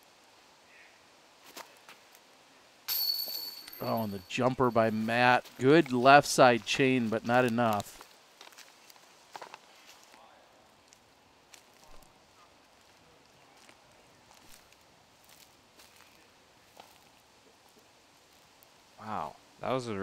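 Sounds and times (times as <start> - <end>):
soft ticks and rustles: 4.3 - 18.8.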